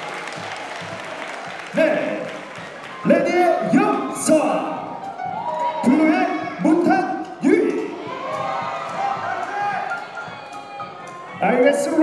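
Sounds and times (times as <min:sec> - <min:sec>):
audience applause: 0:00.0 - 0:06.9.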